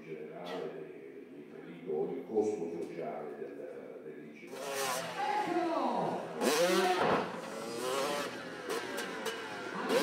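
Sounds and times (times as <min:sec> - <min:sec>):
dirt bike engines revving: 0:04.5 - 0:10.0.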